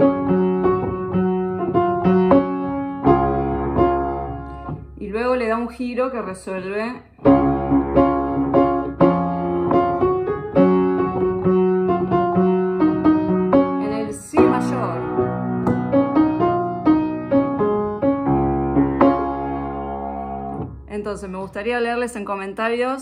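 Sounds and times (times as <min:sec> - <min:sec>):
upright piano chords: 0:00.0 - 0:05.3, 0:07.2 - 0:22.2.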